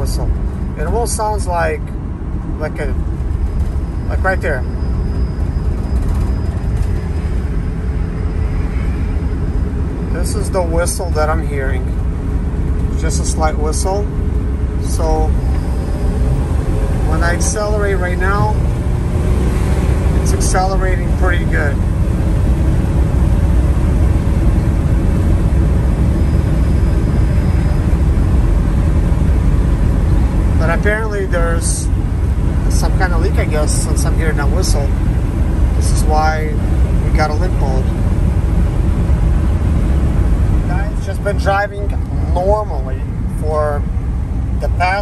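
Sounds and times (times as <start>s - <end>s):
van road and engine rumble: 0.0s - 45.0s.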